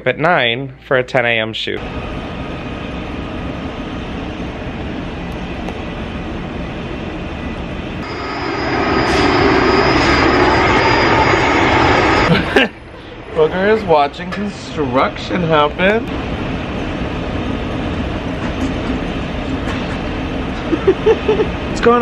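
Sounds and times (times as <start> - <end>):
construction machinery running: 1.8 - 22.0
thin high whine: 8.0 - 14.1.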